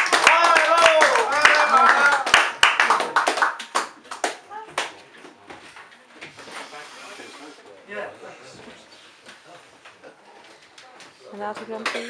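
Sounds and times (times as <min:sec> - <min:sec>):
audience applauding: 0:00.0 - 0:04.9
voices in a room: 0:00.0 - 0:12.0.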